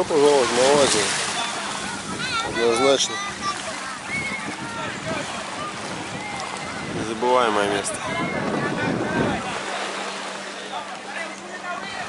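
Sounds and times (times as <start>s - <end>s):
gentle surf: 0.0s - 12.0s
motorboat engine humming: 0.0s - 12.0s
people's voices: 0.0s - 12.0s
wind on microphone: 1.7s - 9.6s.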